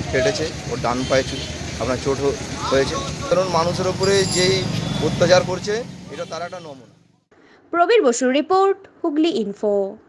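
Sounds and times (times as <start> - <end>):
man talking: 0.0 - 7.0.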